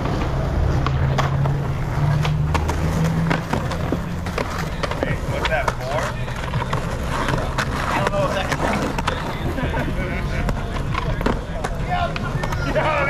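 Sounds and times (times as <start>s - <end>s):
skateboard clacking on ground: 0.0s - 13.0s
skateboard wheels rolling on asphalt: 0.0s - 13.0s.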